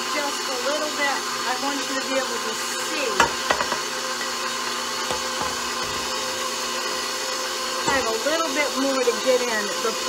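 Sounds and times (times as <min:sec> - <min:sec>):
stand mixer running: 0:00.0 - 0:10.0.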